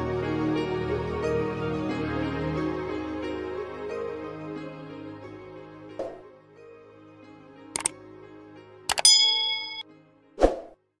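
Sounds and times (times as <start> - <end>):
bright notification bell ding: 8.9 - 9.8.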